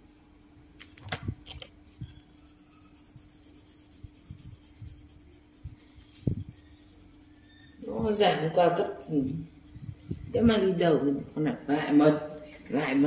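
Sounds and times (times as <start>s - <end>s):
colored pencil on paper: 2.4s - 11.1s.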